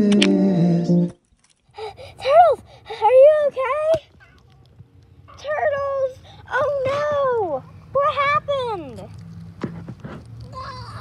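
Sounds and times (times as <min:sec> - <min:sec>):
child whining: 0:10.5 - 0:11.0.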